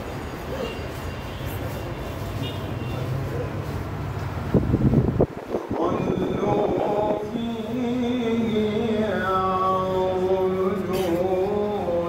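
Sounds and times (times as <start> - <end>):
crowd murmur: 0.0 - 4.4.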